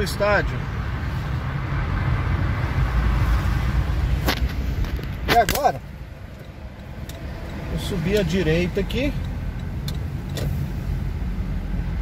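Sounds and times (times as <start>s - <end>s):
traffic and tyres rumbling: 0.0s - 12.0s.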